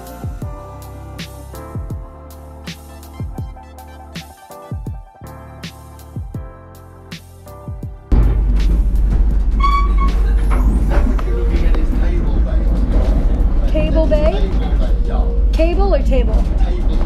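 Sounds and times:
electronic music: 0.0 - 16.0
moving train rumble and rush: 8.1 - 17.0
voices: 9.6 - 17.0.

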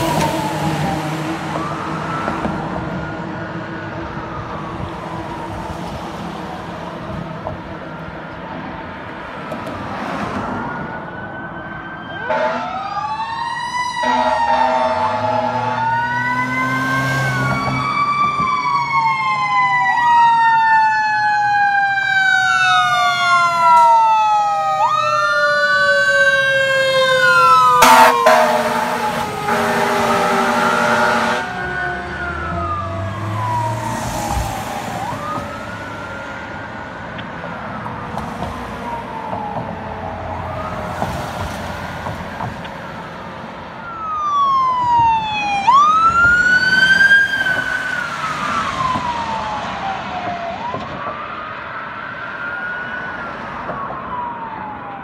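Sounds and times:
fire truck sirens wailing: 0.0 - 55.0
air horn blasts: 12.2 - 12.8, 14.0 - 15.8, 27.8 - 31.5.

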